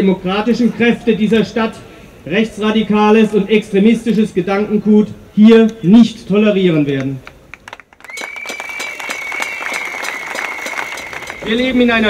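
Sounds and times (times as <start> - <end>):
crowd applauding: 7.3 - 12.0
high whistle-like tone: 8.1 - 11.8.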